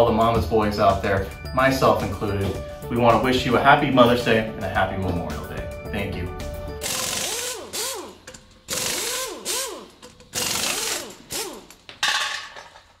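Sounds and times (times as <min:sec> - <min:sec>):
power tool whine: 0:06.8 - 0:11.8.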